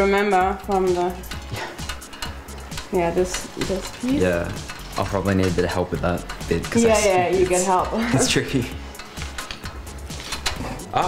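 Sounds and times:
hangers clinking on metal rail: 0.6s - 10.8s.

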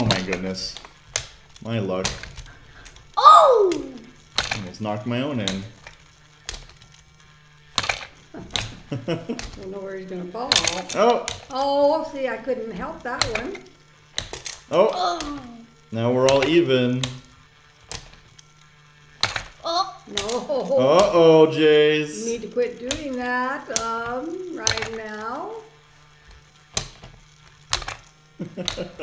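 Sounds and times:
sharp plastic clacks: 0.0s - 4.7s, 10.4s - 11.8s, 22.8s - 25.2s, 26.1s - 29.0s
small motor humming: 0.0s - 29.0s
person exclaiming: 3.2s - 4.0s, 14.7s - 15.6s, 19.6s - 21.7s.

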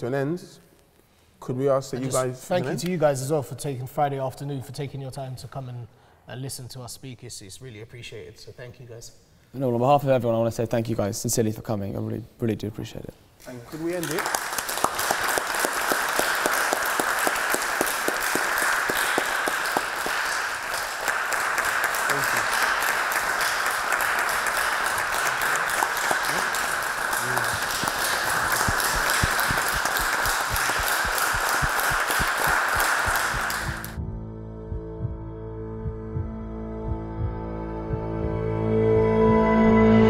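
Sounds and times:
audience applauding: 13.6s - 34.0s
soft ambient music: 32.9s - 40.0s.

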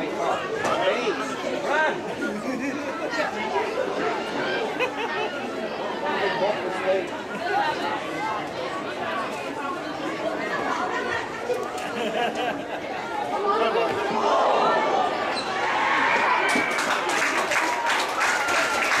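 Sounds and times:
chatter of spectators: 0.0s - 19.0s.

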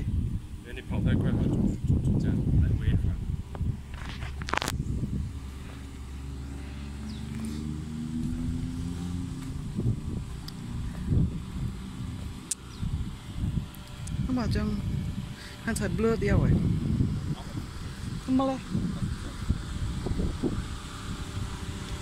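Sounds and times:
car engine running: 0.0s - 22.0s
road traffic rumble: 0.0s - 22.0s.

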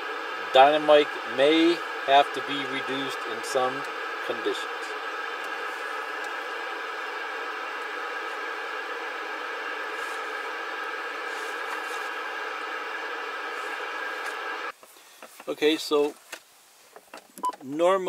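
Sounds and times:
radio static hiss: 0.0s - 18.0s.

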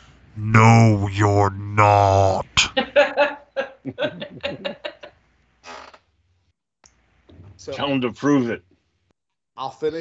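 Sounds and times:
person chuckling: 3.8s - 5.1s.

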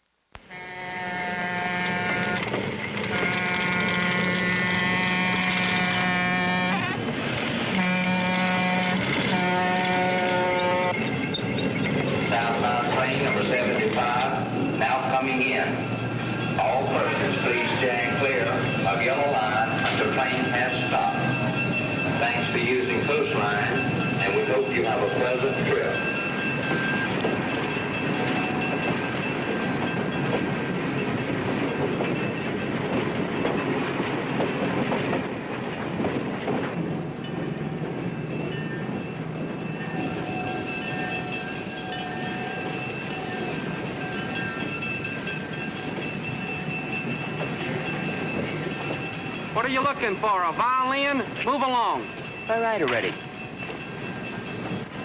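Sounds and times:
train wheels clattering and squealing: 1.7s - 7.8s, 8.6s - 55.0s.

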